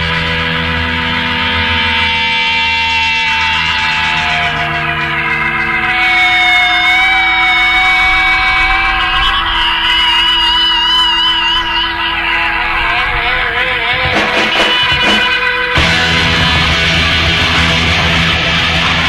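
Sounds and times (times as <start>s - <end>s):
low drone: 0.0s - 19.0s
psychedelic rock organ and guitar: 0.0s - 19.0s.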